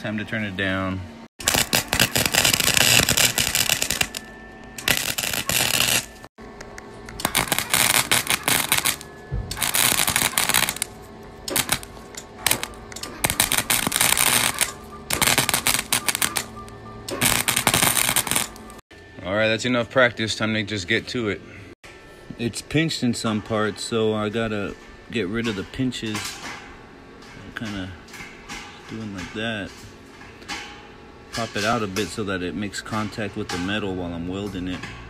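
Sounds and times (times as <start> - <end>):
welder arc crackling and spitting: 1.4 - 4.2, 4.8 - 6.2, 7.2 - 9.0, 9.6 - 10.9, 11.5 - 16.5, 17.2 - 18.7.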